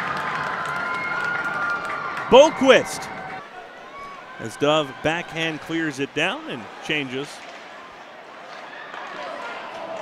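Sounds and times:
arena crowd: 0.0s - 10.0s
distant voices calling out: 2.3s - 3.3s.

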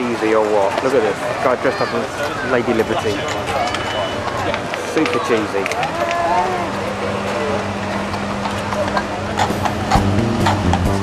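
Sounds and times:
horse hooves clopping on pavement: 0.0s - 11.0s
people's voices: 0.0s - 11.0s.

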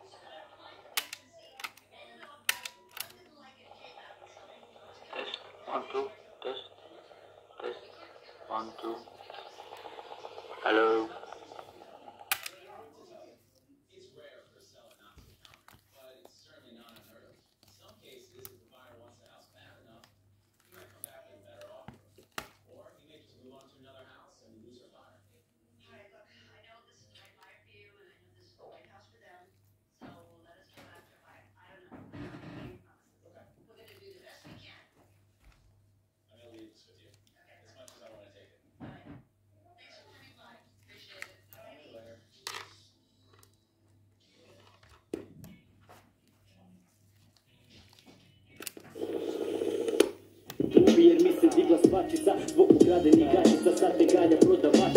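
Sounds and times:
faint steady hum: 0.0s - 13.4s.

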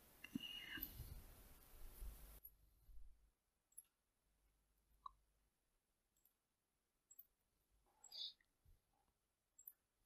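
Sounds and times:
soft mouth and breath noises: 0.2s - 2.3s.

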